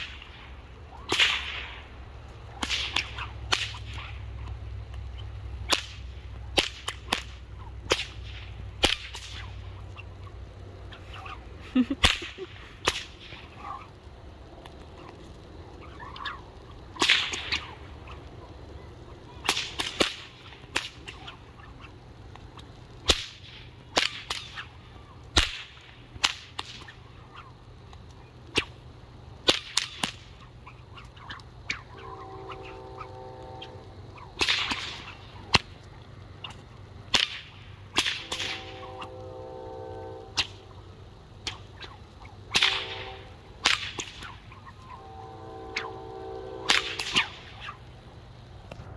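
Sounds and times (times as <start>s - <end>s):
whip cracking: 0.0s - 1.9s, 2.5s - 4.5s, 5.6s - 9.7s, 12.0s - 13.9s, 15.8s - 18.2s, 19.4s - 21.9s, 22.6s - 28.8s, 29.4s - 32.6s, 34.2s - 38.9s, 40.3s - 40.7s, 41.4s - 45.0s, 46.7s - 47.8s
whip swishing: 1.0s - 1.8s, 2.5s - 4.2s, 5.6s - 9.6s, 12.0s - 13.8s, 17.0s - 17.8s, 19.4s - 21.7s, 23.0s - 24.7s, 25.4s - 27.5s, 29.4s - 31.8s, 34.4s - 35.7s, 36.4s - 38.9s, 43.6s - 44.7s, 46.7s - 47.8s
steady pitched tone: 31.7s - 34.3s.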